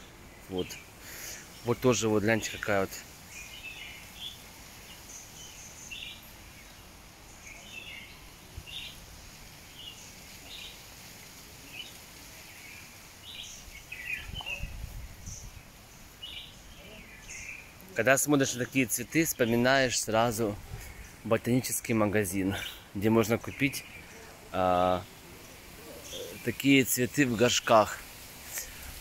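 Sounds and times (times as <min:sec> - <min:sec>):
faint outdoor background noise: 0:00.0 - 0:29.0
small birds chirping: 0:00.0 - 0:29.0.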